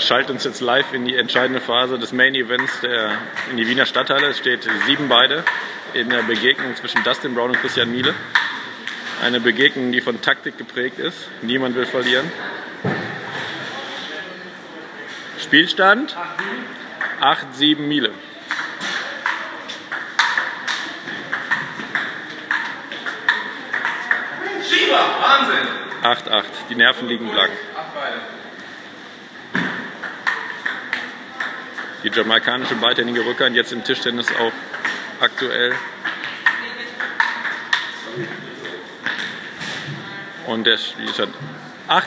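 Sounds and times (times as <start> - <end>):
table tennis ball clicking: 2.6 - 9.0, 18.5 - 24.4, 30.0 - 32.0, 34.3 - 38.0.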